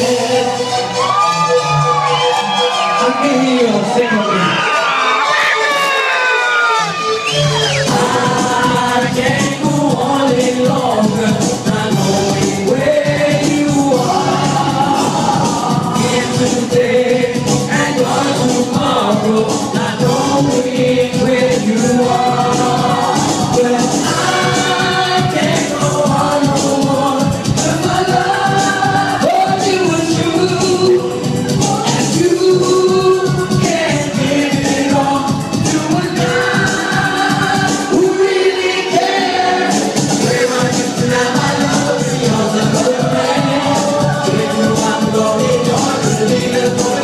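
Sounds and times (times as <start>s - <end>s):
man singing into microphone: 0.0s - 0.9s, 7.9s - 47.0s
dance-pop music over sound system: 0.0s - 47.0s.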